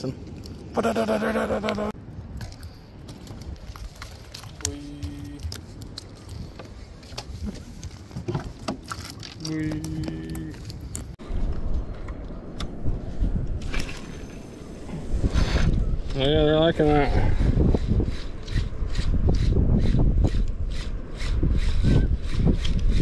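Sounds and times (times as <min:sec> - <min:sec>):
wind rumble on microphone: 0:02.0 - 0:23.0.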